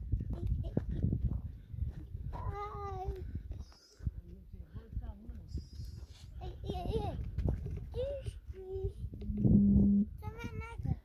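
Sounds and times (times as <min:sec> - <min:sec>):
steady low rumble: 0:09.1 - 0:10.2.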